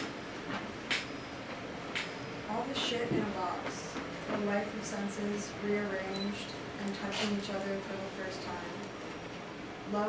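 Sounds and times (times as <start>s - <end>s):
steady room hum: 0.0s - 10.0s.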